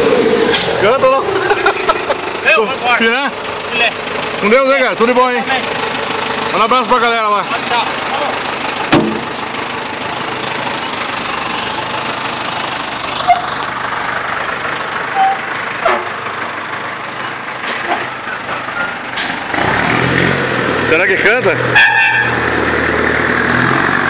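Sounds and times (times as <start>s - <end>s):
truck engine: 0.0s - 24.0s.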